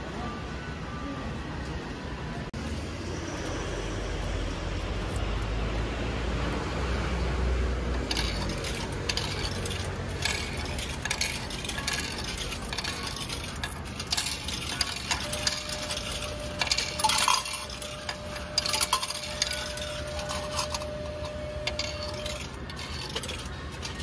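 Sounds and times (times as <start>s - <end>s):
coins clinking and dropping: 7.9s - 24.0s.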